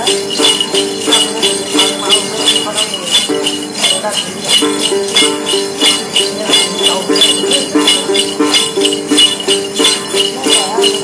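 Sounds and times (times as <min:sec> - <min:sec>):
jingle bells shaken: 0:00.0 - 0:11.0
plucked long-necked lute: 0:04.6 - 0:11.0.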